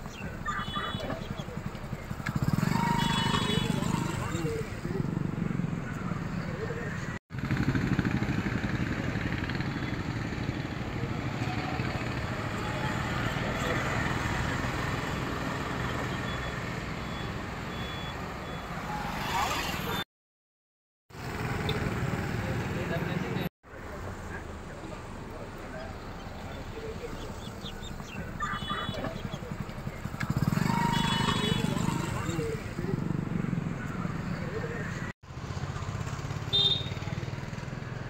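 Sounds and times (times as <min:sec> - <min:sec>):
people's voices: 0:00.0 - 0:05.2, 0:22.4 - 0:35.1
road traffic noise: 0:00.0 - 0:20.1, 0:21.1 - 0:38.0.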